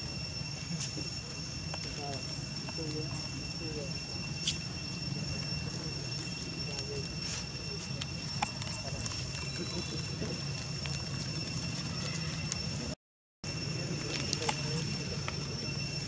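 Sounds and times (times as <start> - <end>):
constant low hum: 0.0 - 16.0
high insect drone: 0.0 - 16.0
faint indistinct voices: 5.2 - 10.6, 13.5 - 16.0.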